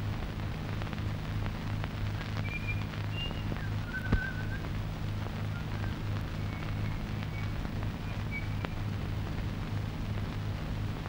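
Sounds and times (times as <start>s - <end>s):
film soundtrack hum and crackle: 0.0s - 11.0s.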